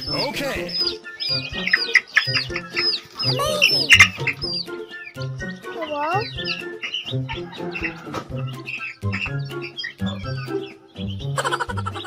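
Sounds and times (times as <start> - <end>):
baby chicks peeping: 0.0 - 12.0
background music with steady beat: 0.0 - 12.0
hen squawking and clucking: 0.0 - 12.0.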